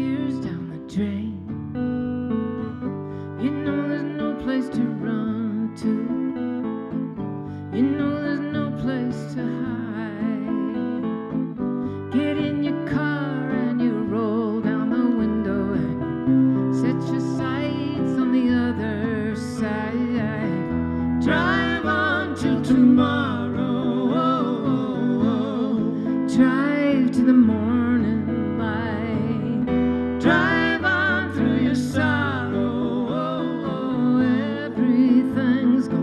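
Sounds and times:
woman singing: 0.0 - 1.8, 2.9 - 36.0
strummed acoustic guitars: 0.0 - 36.0.

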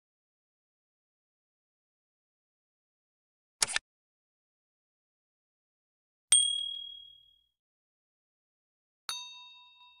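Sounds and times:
high pure ding: 6.3 - 7.4, 9.1 - 10.0
lower bell-like ding: 6.4 - 7.4, 9.1 - 10.0.

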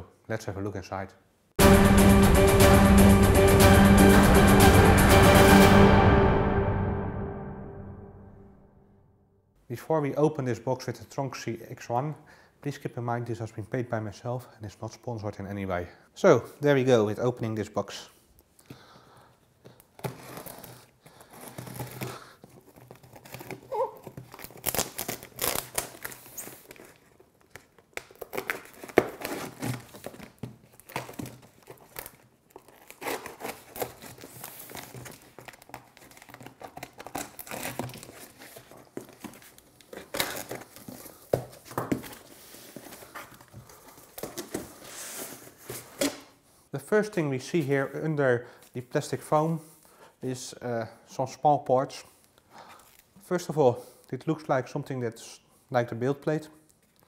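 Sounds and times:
cardboard and tape crinkling: 19.6 - 46.3
scissors cutting packing tape: 20.0 - 38.4.

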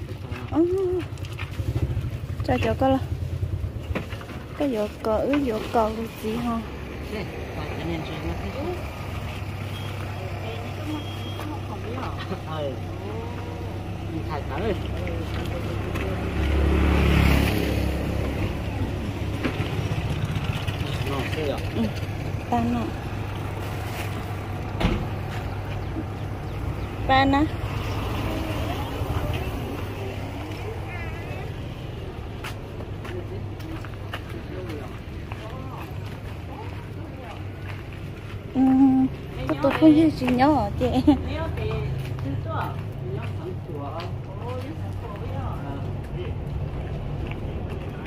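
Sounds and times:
vehicle engine humming: 0.0 - 48.0
people talking: 4.6 - 8.9, 20.8 - 23.0, 27.0 - 27.6, 28.2 - 31.6, 38.6 - 46.5.

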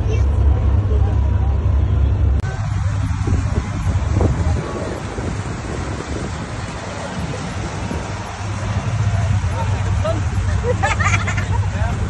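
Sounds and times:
boat engine rumble: 0.0 - 12.0
water noise: 0.0 - 12.0
wind: 0.0 - 12.0.

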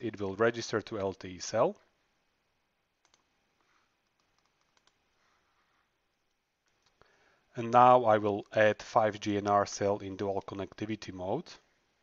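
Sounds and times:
computer mouse clicks: 3.0 - 3.3, 4.0 - 5.0, 6.2 - 7.0.

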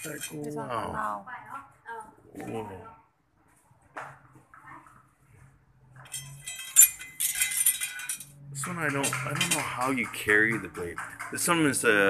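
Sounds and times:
metal clinks of sword and scabbard: 6.0 - 8.3.

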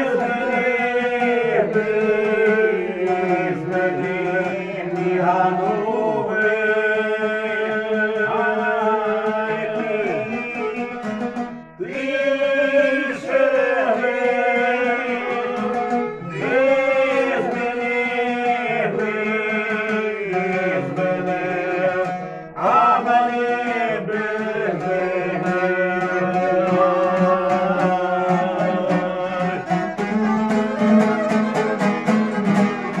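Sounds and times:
man folk singing: 0.0 - 33.0
plucked lute: 0.0 - 33.0
violins: 25.7 - 33.0.

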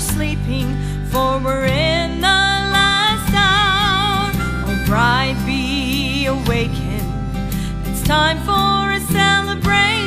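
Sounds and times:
instrumental backing: 0.0 - 10.0
woman singing with vibrato: 0.0 - 10.0.

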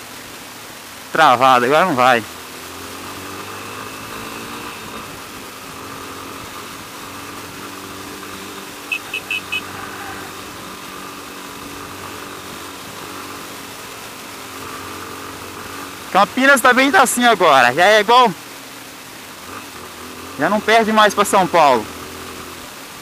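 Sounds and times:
wind and road noise: 0.0 - 23.0
motorcycle engine running: 1.1 - 23.0.

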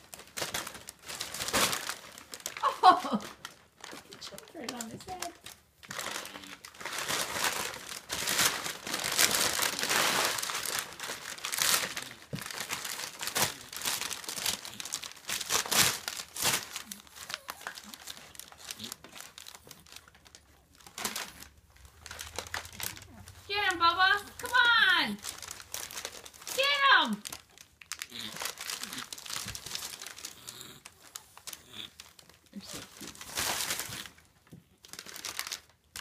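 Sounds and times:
packing paper crumpling and crinkling: 0.0 - 36.0.

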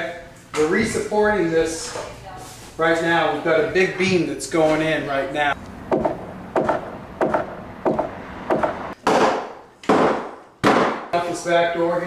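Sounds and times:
sharp knocks on wood: 5.9 - 11.1.

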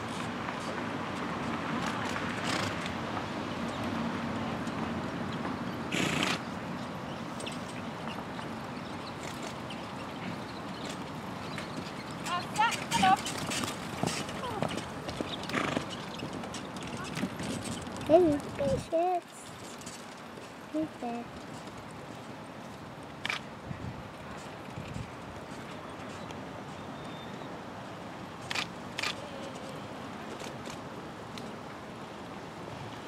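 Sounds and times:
outdoor background noise: 0.0 - 33.0
horse snorting: 5.9 - 6.4, 15.3 - 16.0
horse trotting on turf: 9.2 - 22.8.

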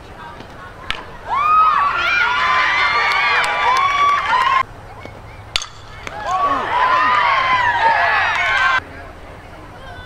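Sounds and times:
bat hitting softball: 0.4 - 4.3, 5.0 - 8.8
crowd yelling and cheering: 0.9 - 4.7, 5.3 - 8.8.

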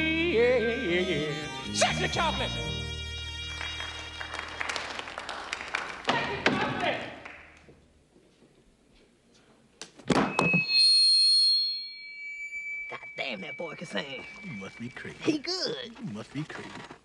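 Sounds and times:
high steady feedback squeal: 10.3 - 15.6.

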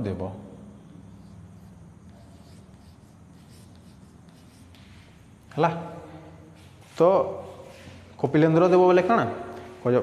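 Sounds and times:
chalk scratching on blackboard: 0.9 - 5.5.

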